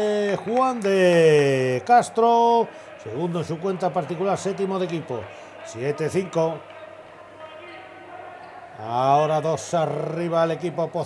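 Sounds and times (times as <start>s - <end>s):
man commentating: 0.0s - 6.6s, 8.8s - 11.0s.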